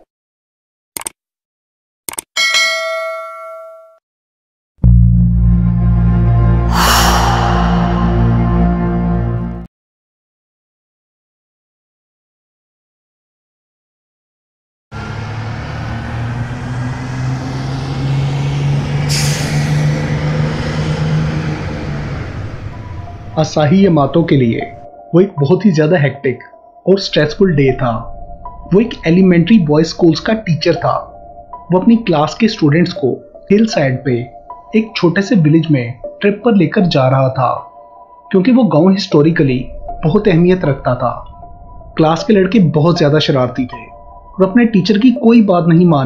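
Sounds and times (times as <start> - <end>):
mouse clicks: 1.0 - 1.2
notification bell ding: 2.4 - 4.0
deep intro music drone: 4.8 - 9.7, 15.0 - 23.4, 39.6 - 42.0
bus engine driving by: 15.0 - 23.4
air brakes hissing: 19.1 - 19.8.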